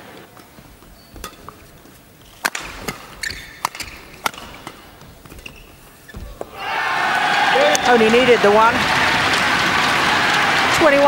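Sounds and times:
low arena background: 0:00.0 - 0:11.0
shoe squeaks on court: 0:00.8 - 0:06.6
shuttlecock struck by rackets: 0:02.4 - 0:04.9.

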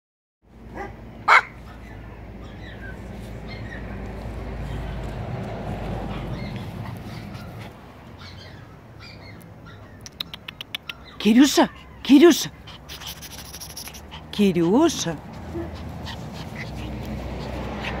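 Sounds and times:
dog barking: 0:00.7 - 0:02.8, 0:15.5 - 0:15.8
puppy making high-pitched sounds: 0:06.1 - 0:18.0.

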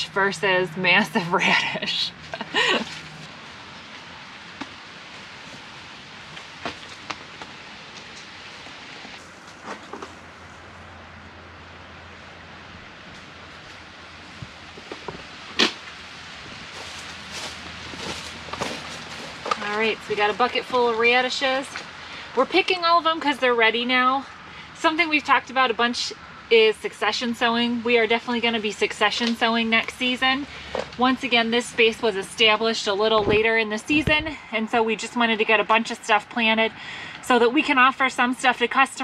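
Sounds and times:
person laughing: 0:01.2 - 0:03.0.

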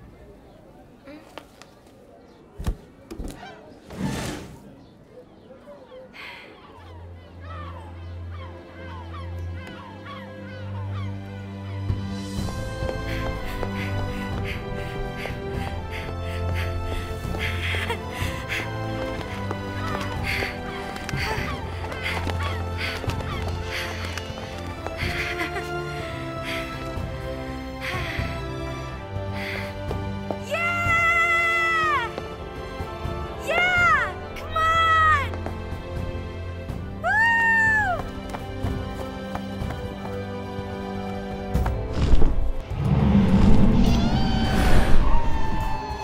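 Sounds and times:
orchestral strings and brass: 0:07.0 - 0:30.8
creature high cries: 0:43.8 - 0:46.0.

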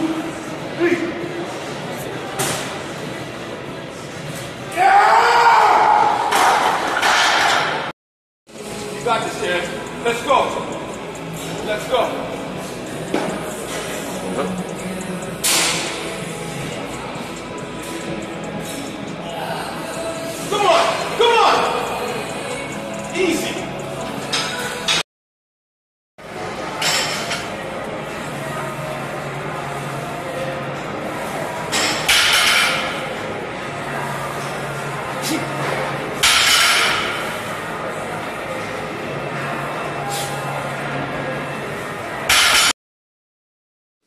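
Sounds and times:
background music: 0:08.6 - 0:25.0.

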